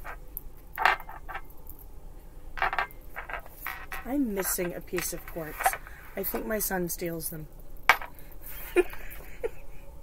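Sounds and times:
cards tapping and scraping on table: 0:02.6 - 0:05.8, 0:07.9 - 0:08.1.

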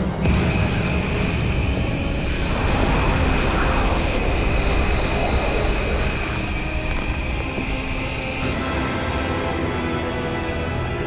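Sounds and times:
rumbling energy blast: 0:00.2 - 0:08.4.

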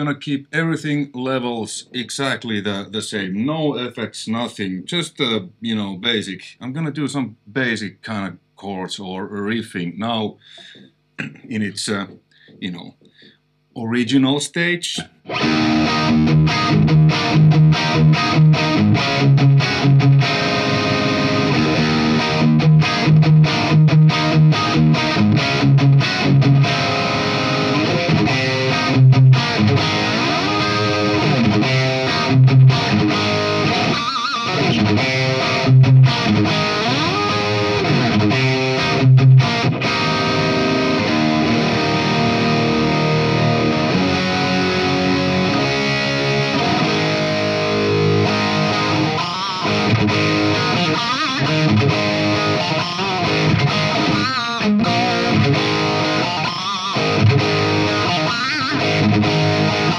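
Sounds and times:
distorted electric guitar: 0:09.4 - 0:13.7, 0:14.8 - 0:59.9.

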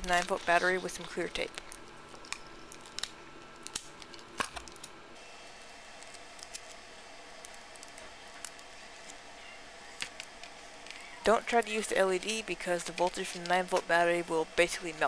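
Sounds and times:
adhesive tape crackling: 0:00.0 - 0:05.0, 0:05.6 - 0:15.0.

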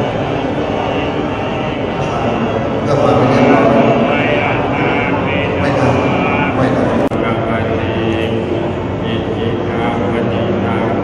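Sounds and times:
monks chanting: 0:00.0 - 0:11.0.

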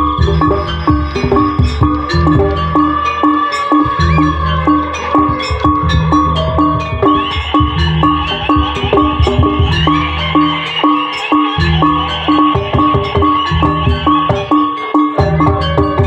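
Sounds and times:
drums: 0:00.0 - 0:16.0
metal gong-chimes struck: 0:00.0 - 0:16.0.

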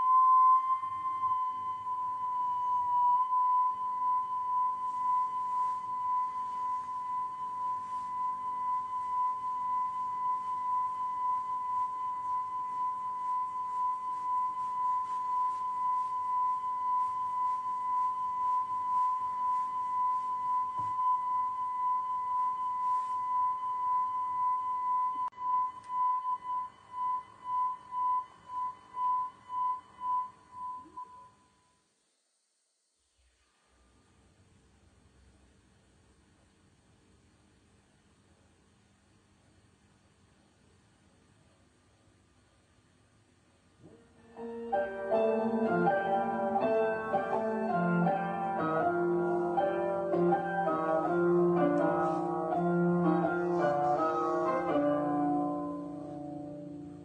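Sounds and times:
short beeps: 0:00.0 - 0:31.8
steady test tone: 0:00.0 - 0:31.8, 0:43.8 - 0:57.0
faint hiss: 0:28.3 - 0:57.0.

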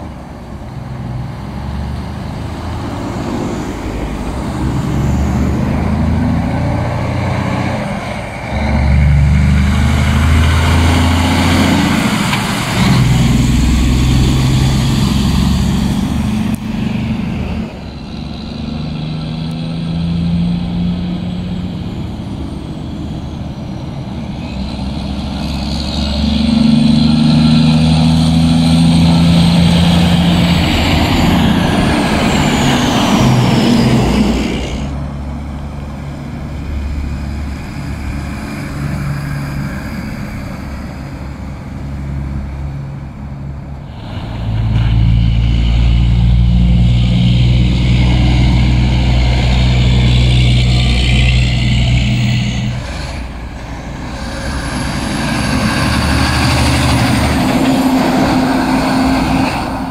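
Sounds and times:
diesel trucks driving past: 0:00.0 - 0:59.9.

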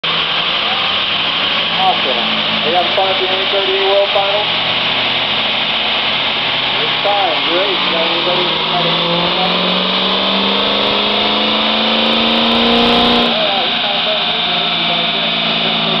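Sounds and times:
diesel engine revving on dyno: 0:00.0 - 0:16.0.

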